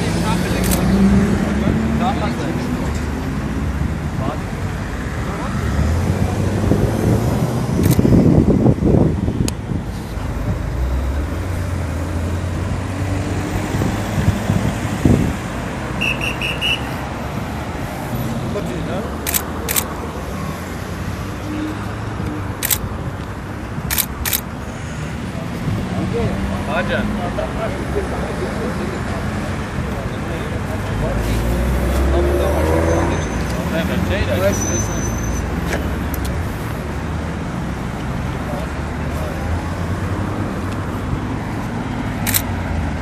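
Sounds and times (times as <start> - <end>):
vehicle passing loudly: 0.0 - 4.0, 4.9 - 9.2, 25.2 - 35.0
roadside traffic: 0.0 - 43.0
sharp clicks: 7.8 - 8.1, 19.2 - 19.9, 22.6 - 22.8, 23.9 - 24.4, 42.2 - 42.5
voices talking: 24.6 - 36.9.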